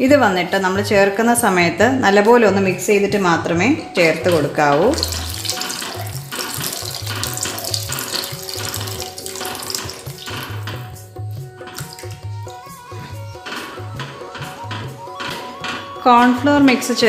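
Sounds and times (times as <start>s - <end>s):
background music with low beat: 0.0s - 17.0s
thick mixture sloshing in a pan: 4.9s - 10.9s.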